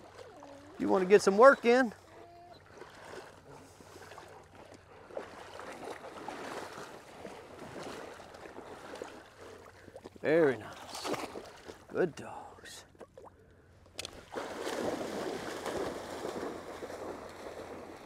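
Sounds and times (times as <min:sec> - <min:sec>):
person wading through water: 0:00.0 - 0:18.0.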